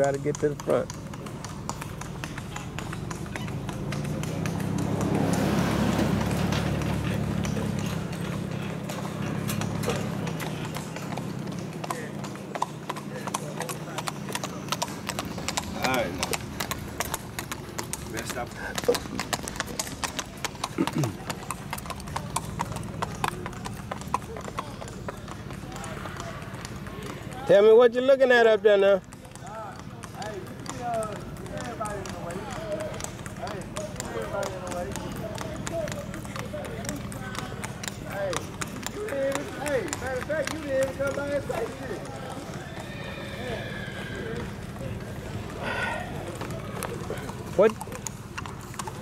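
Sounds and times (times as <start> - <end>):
hooves clip-clopping on asphalt: 0.0 - 49.0
low engine hum: 2.2 - 11.8.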